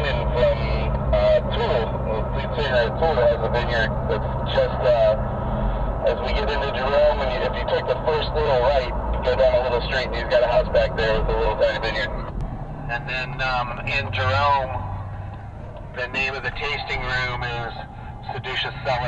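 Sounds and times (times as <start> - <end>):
indistinct talking: 0.0 - 19.0
vehicle engine and tyre drone: 0.0 - 19.0.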